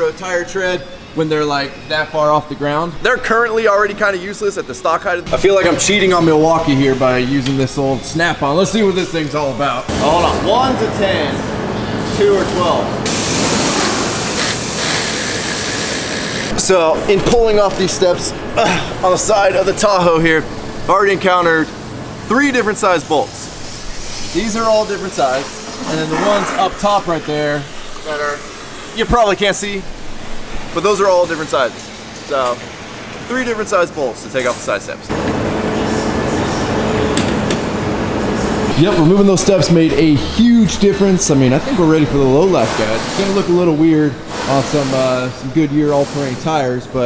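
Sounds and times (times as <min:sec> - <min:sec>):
steady machine noise: 0:00.0 - 0:47.0
impact wrench running: 0:13.1 - 0:16.5.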